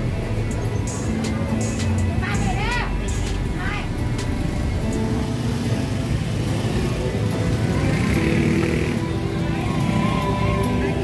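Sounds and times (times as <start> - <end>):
music with steady melody: 0.0 - 11.0
road traffic: 0.0 - 11.0.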